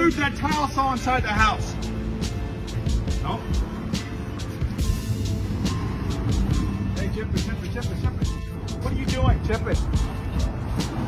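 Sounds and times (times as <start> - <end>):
music with a steady beat: 0.0 - 11.0
street traffic: 0.0 - 11.0.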